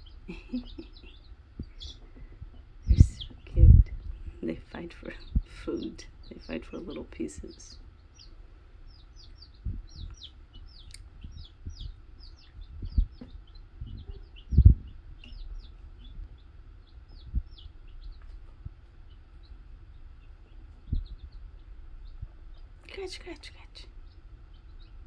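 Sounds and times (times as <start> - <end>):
dull low thumps: 0.0 - 6.9, 8.9 - 22.8
baby chicks peeping: 0.0 - 25.0.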